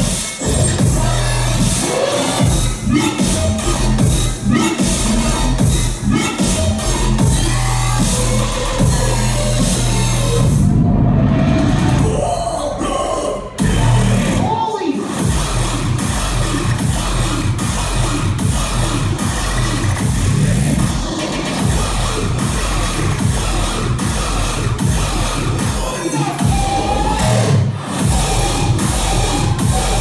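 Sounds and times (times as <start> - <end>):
dubstep music over sound system: 0.0 - 30.0
deep bass downward sweep: 0.4 - 12.2, 13.5 - 14.4, 26.4 - 30.0.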